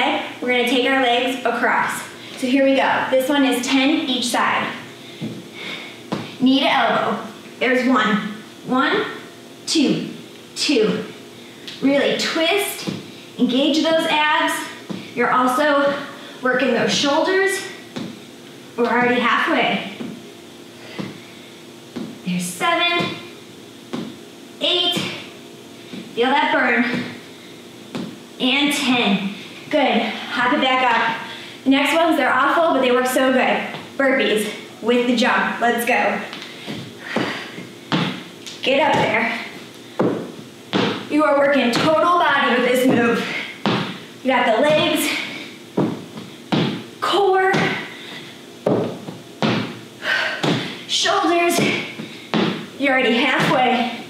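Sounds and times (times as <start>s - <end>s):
sneakers tapping on tiled floor: 36.3s - 39.4s, 40.0s - 41.1s, 42.9s - 44.0s, 45.8s - 46.8s, 48.7s - 49.8s, 51.6s - 52.6s.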